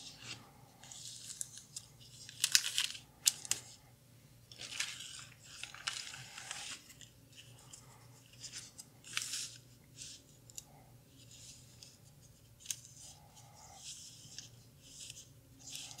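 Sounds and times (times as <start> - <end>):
film negatives rustling on paper: 4.5 - 10.6.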